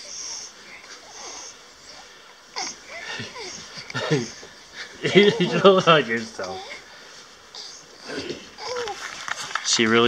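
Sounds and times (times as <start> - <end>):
wheezy breaths: 0.0 - 9.6
breathy vocal sounds: 6.4 - 9.0.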